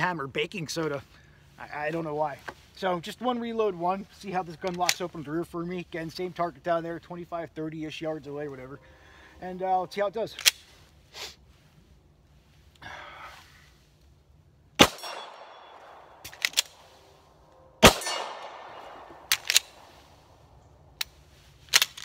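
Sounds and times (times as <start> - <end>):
pistol shots with echo: 14.8 - 16.8, 17.8 - 19.9
sharp metallic pistol clicks: 14.8 - 16.8, 17.8 - 19.8.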